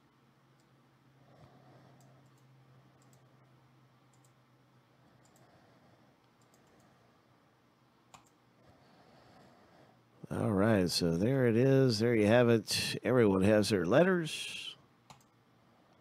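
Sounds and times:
steady low hum: 0.0 - 16.0
computer mouse and keyboard clicks: 2.0 - 3.3, 4.1 - 4.4, 6.2 - 7.0, 8.1 - 8.4, 15.1 - 15.4.

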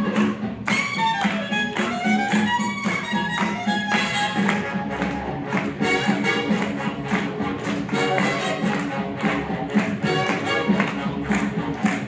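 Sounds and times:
swing music: 0.0 - 12.0.

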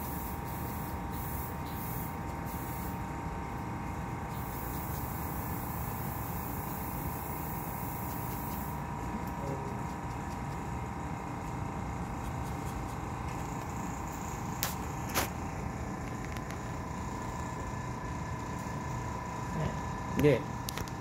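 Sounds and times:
workroom hum: 0.0 - 21.0.

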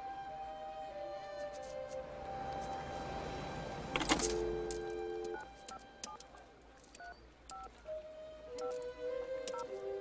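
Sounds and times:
two-tone keypad beeps: 6.9 - 7.7.

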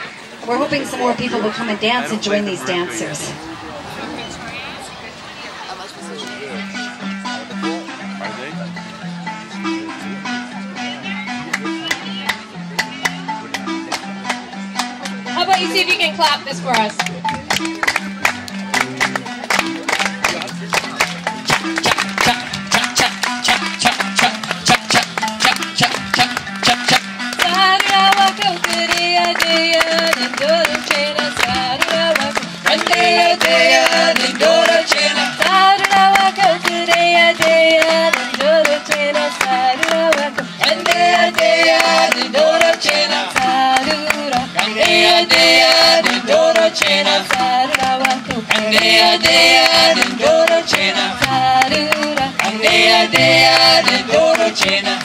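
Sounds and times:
marimba band with drums: 5.6 - 55.0
people singing: 22.2 - 55.0.

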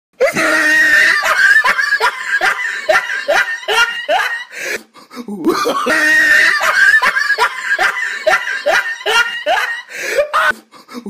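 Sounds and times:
person shrieking: 0.2 - 1.7
person laughing: 0.2 - 10.6.

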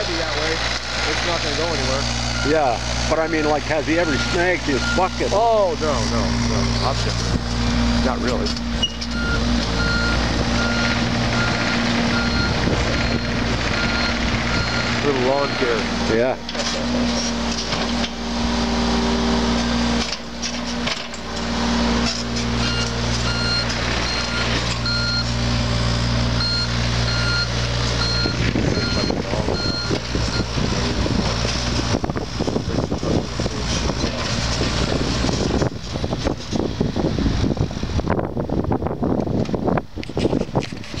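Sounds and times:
excavator diesel engine running: 0.0 - 41.0
motion alarm beeping: 3.2 - 5.3, 8.8 - 14.9, 22.6 - 25.3, 26.4 - 30.5.

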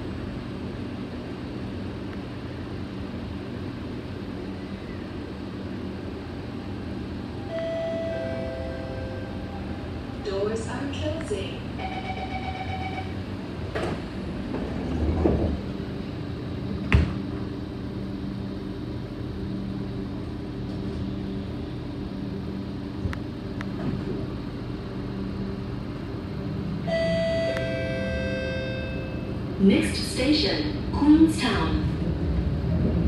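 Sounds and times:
train running gear humming: 0.0 - 33.0
train doors shutting with knock: 13.6 - 15.9, 16.8 - 17.5, 23.0 - 24.3.

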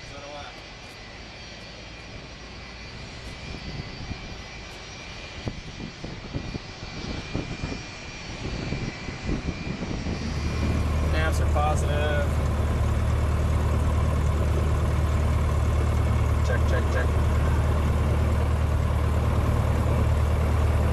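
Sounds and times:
aircraft engine whine: 0.0 - 20.9
steady low drone: 0.0 - 20.9.

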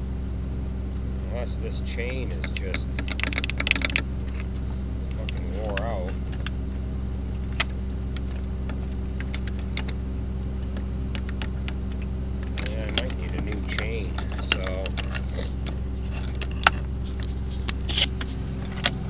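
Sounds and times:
engine hum: 0.0 - 19.0.

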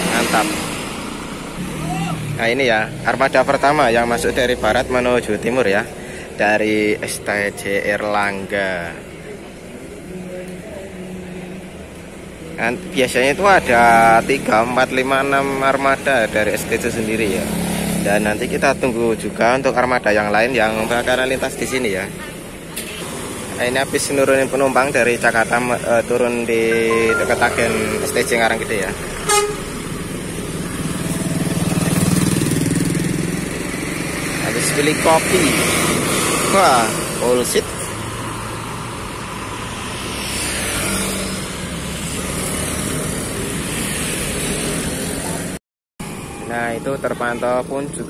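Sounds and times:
vehicles passing with engine drone: 0.0 - 48.0
bus diesel engine droning: 20.5 - 32.8.

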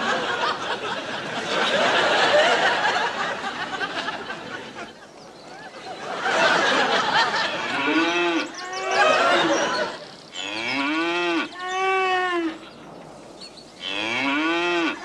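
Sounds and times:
cattle mooing: 10.4 - 12.6, 13.8 - 15.0.

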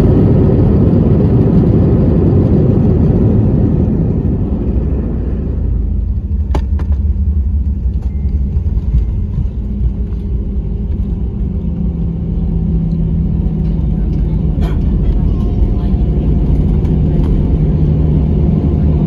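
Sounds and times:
jet engines and landing rumble: 0.0 - 19.0.

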